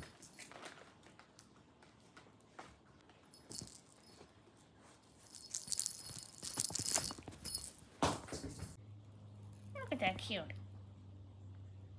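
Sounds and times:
small bell jingling: 0:03.3 - 0:04.3, 0:05.2 - 0:07.9.

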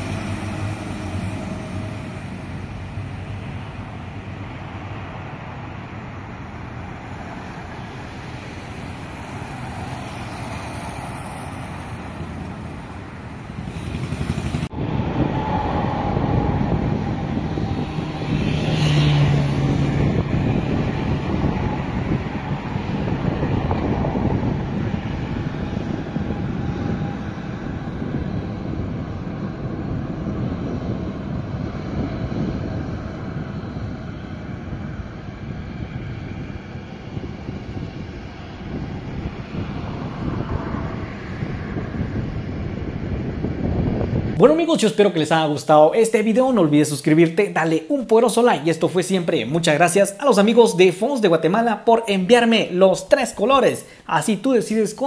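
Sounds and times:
cars and buses passing: 0:00.0 - 0:55.0.

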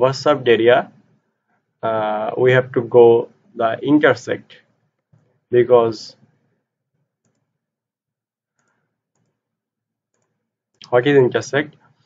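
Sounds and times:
computer mouse clicks: 0:07.2 - 0:07.5, 0:08.6 - 0:09.4, 0:10.1 - 0:10.9.

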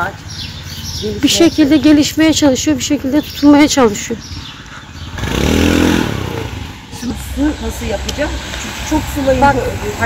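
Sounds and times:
street traffic: 0:00.0 - 0:10.0
vehicle engine passing: 0:00.0 - 0:10.0.

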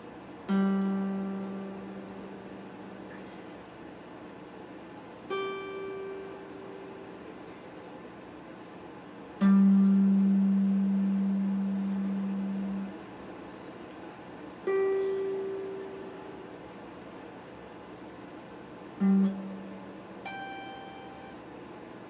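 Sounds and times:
electric guitar single notes: 0:00.5 - 0:03.3, 0:09.4 - 0:13.0, 0:18.9 - 0:21.4.

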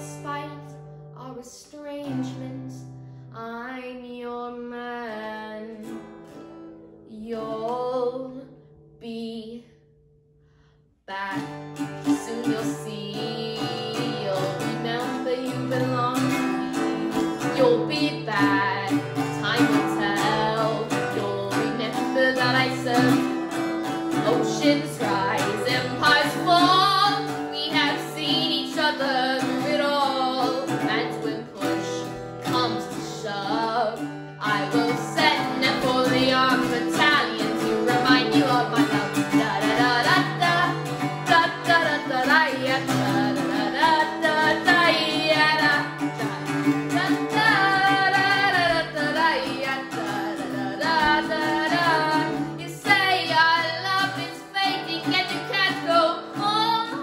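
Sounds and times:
acoustic guitar strumming: 0:00.0 - 0:03.3, 0:10.4 - 0:57.0
boy singing: 0:00.0 - 0:05.9, 0:07.1 - 0:09.6, 0:11.1 - 0:57.0.

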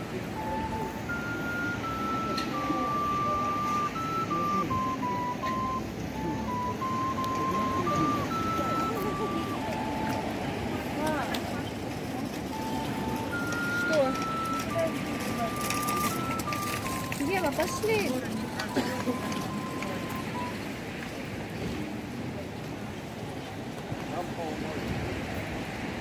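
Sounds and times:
end-blown flute melody: 0:00.0 - 0:11.4, 0:12.5 - 0:20.6
crowd chatter: 0:00.0 - 0:26.0.

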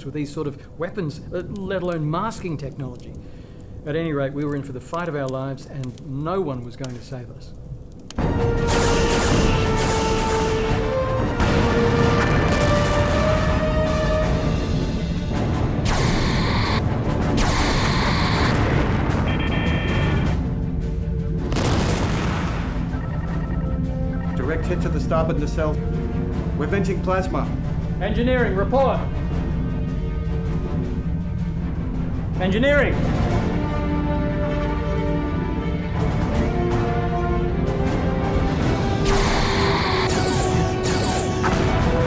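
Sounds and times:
dramatic film score: 0:00.0 - 0:42.0
crashing explosions: 0:08.2 - 0:13.8, 0:21.5 - 0:22.9
background music with bass: 0:08.2 - 0:39.1.

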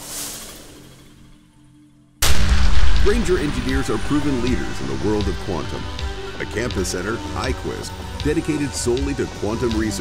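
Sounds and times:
music: 0:00.0 - 0:10.0
cinematic boom hit: 0:02.2 - 0:07.4.

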